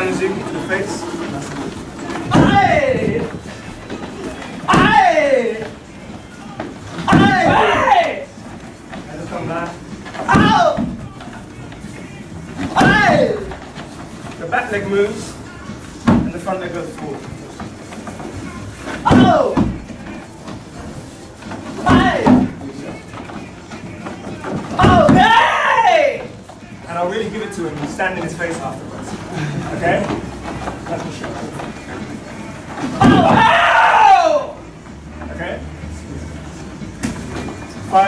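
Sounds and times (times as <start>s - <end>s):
hall background noise: 0.0s - 38.0s
shuffling on mats: 0.0s - 38.0s
loud kiai shout: 2.3s - 3.3s, 4.7s - 5.7s, 7.0s - 8.3s, 10.3s - 10.9s, 12.7s - 13.5s, 19.0s - 19.6s, 21.8s - 22.5s, 24.8s - 26.3s, 33.0s - 34.6s.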